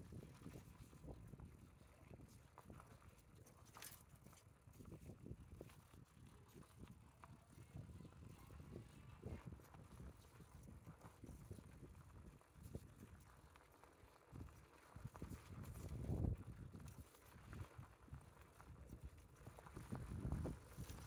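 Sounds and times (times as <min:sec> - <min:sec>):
horse hooves on dirt road: 0:00.0 - 0:21.0.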